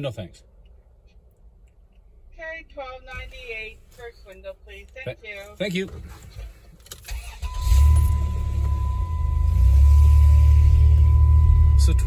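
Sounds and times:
van engine rumbling: 0.0s - 12.0s.

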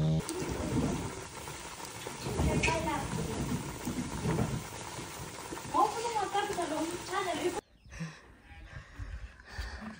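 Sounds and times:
thick porridge bubbling: 0.0s - 7.6s.

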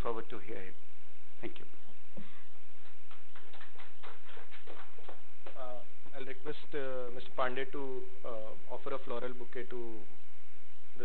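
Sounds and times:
steady electrical hum: 0.0s - 11.0s
light hand clapping: 2.8s - 5.8s.

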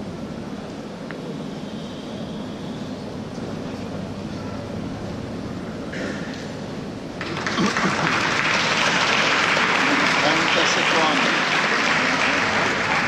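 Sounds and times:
crowd applauding: 7.2s - 13.0s.

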